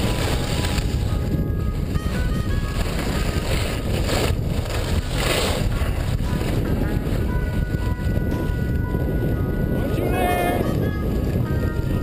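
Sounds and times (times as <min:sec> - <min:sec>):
skis sliding over snow: 0:00.0 - 0:08.6
wind buffeting microphone: 0:00.0 - 0:12.0.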